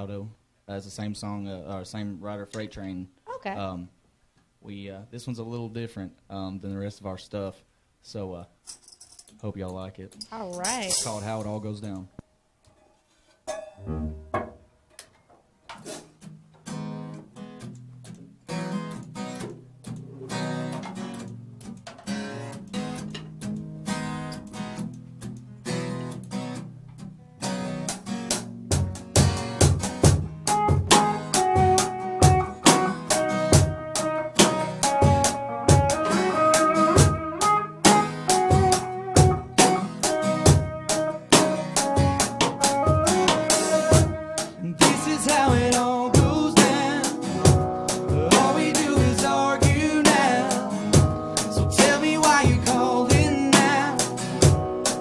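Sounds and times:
drum kit steady beat: 0:10.3 - 0:11.2, 0:27.8 - 0:55.0.

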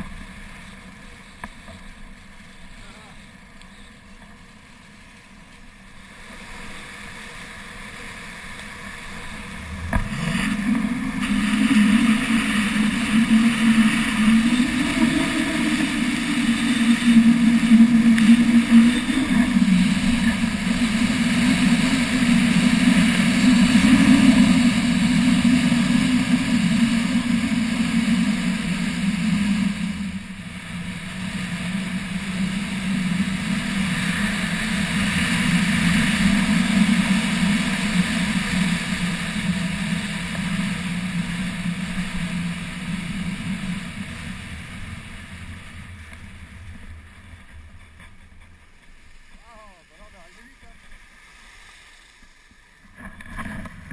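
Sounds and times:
air rushing past: 0:08.0 - 0:49.4.

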